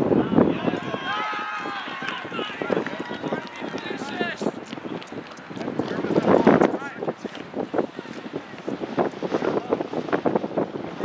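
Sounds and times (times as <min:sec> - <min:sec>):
long drawn-out shout: 0:00.0 - 0:04.5
voices shouting and calling out: 0:00.0 - 0:10.0.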